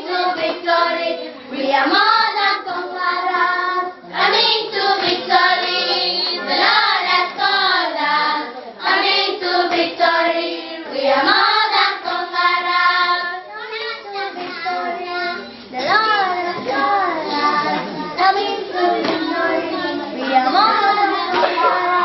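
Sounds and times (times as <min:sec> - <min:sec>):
children singing in unison: 0:00.0 - 0:22.0.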